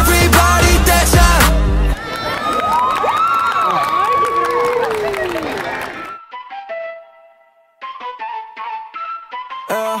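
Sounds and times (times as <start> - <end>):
crowd cheering and whooping: 1.9 - 6.2
people clapping: 2.0 - 6.2.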